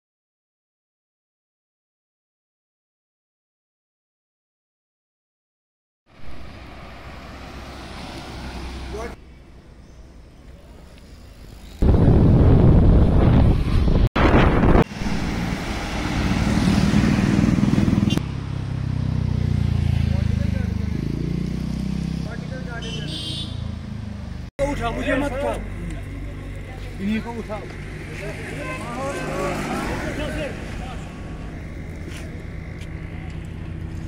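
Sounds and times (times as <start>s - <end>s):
cars passing: 6.1s - 12.1s, 12.9s - 34.0s
road rumble: 6.1s - 34.0s.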